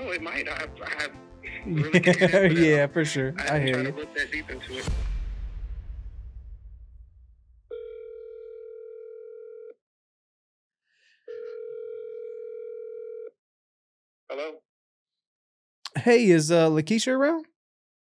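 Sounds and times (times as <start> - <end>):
telephone ringback tone: 7.7 - 9.8, 11.3 - 13.3.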